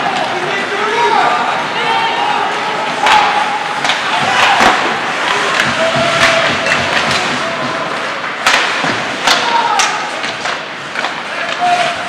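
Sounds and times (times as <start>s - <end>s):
echoing arena noise: 0.0s - 12.0s
players calling: 0.0s - 12.0s
hockey sticks and puck knocking: 2.9s - 12.0s.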